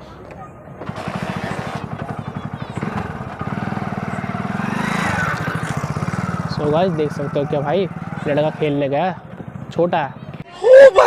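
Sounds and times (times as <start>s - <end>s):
motorbike engine puttering: 0.1s - 10.5s.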